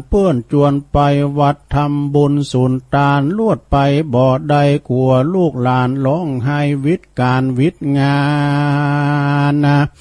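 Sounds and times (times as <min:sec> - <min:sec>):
man chanting a long low note: 0:05.5 - 0:10.0.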